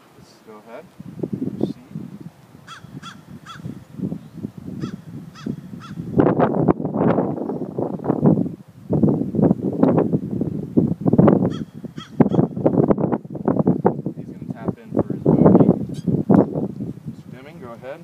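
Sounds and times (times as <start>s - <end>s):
birds calling: 0.0s - 6.3s, 11.4s - 12.7s, 15.8s - 16.7s
crows cawing: 2.6s - 3.8s, 4.8s - 6.1s, 11.5s - 12.5s.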